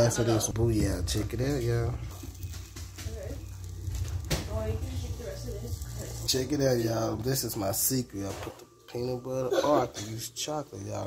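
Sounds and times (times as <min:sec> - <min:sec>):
man's voice: 0:00.0 - 0:02.1.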